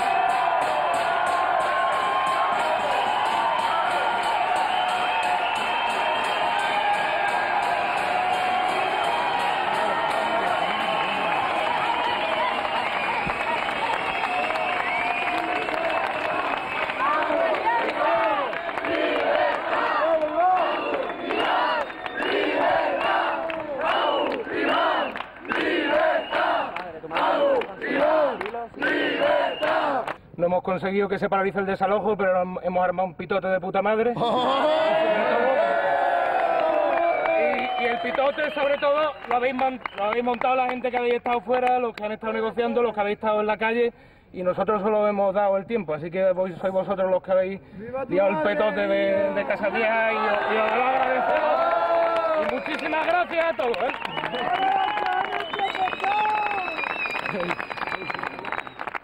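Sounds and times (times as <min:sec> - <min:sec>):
crowd shouting and cheering: 0:00.0 - 0:30.1, 0:34.2 - 0:40.2, 0:48.1 - 0:59.0
rhythmic crowd shouts: 0:00.0 - 0:30.1, 0:49.3 - 0:52.6.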